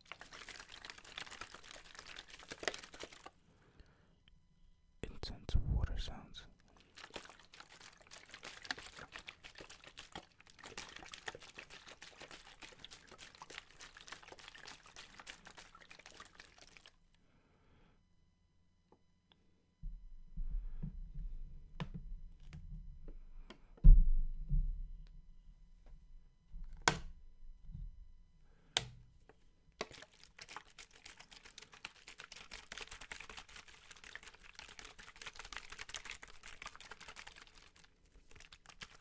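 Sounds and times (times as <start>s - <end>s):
plastic bottles crinkling: 0.0s - 3.4s, 6.6s - 17.0s, 29.8s - 39.0s
water sloshing: 6.7s - 17.0s
low thud: 23.8s - 25.0s.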